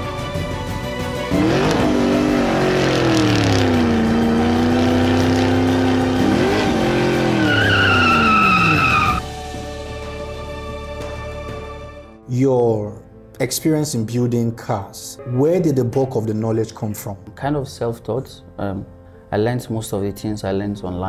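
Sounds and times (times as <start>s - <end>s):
background music: 0.0s - 21.0s
sports car engine revving: 1.3s - 9.2s
high tyre squeal: 1.6s - 9.2s.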